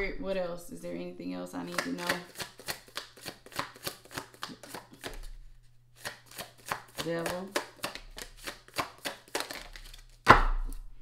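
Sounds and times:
cards shuffling with crisp clicks: 1.6s - 10.3s
cards slapping on a table: 1.7s - 5.3s, 6.0s - 10.8s.

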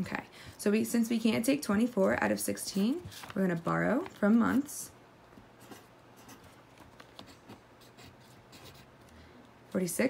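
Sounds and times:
pencil scratching on paper: 5.6s - 8.9s.

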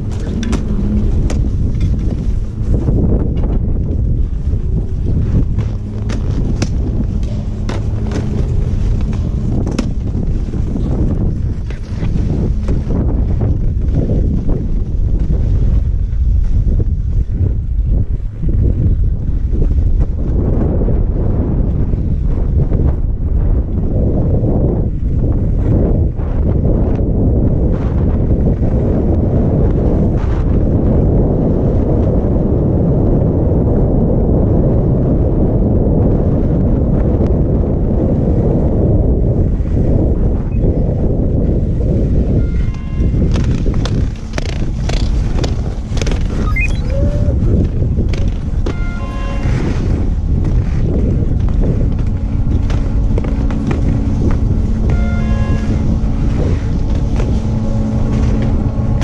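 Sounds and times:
skis and poles clacking: 0.0s - 2.4s, 5.2s - 14.5s
steady hum: 0.0s - 20.4s, 40.3s - 59.0s
wind buffeting microphone: 0.0s - 59.0s
short repeated tones: 46.3s - 47.4s.

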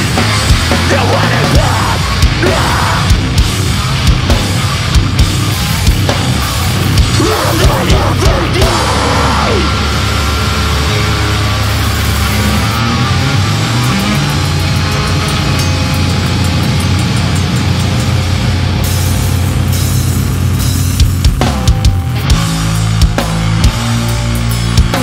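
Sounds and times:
distorted guitar and bass: 0.0s - 25.0s.

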